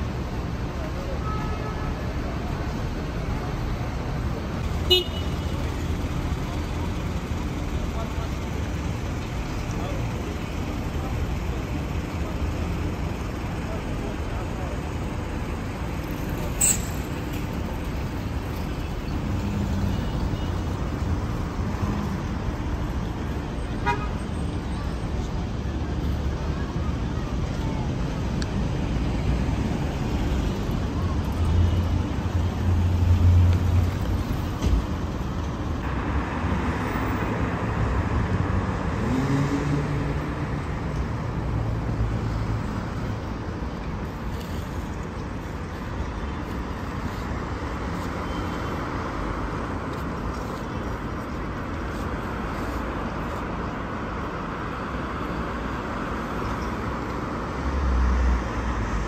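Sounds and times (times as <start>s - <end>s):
traffic rumble: 0.0s - 59.0s
people talking: 6.1s - 15.4s, 24.7s - 28.6s.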